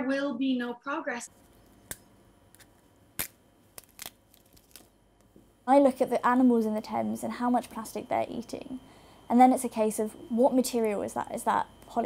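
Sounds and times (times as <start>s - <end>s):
crab shell cracking: 1.8s - 5.0s.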